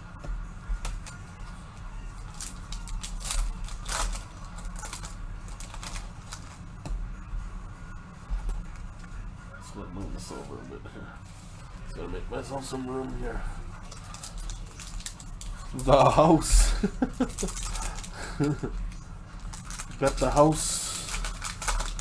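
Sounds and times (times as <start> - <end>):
steady low hum: 0.0 - 22.0
foil wrapper crinkling and tearing: 2.2 - 6.5, 13.8 - 18.7, 19.3 - 22.0
cards rustling and clicking: 2.2 - 6.6, 17.0 - 22.0.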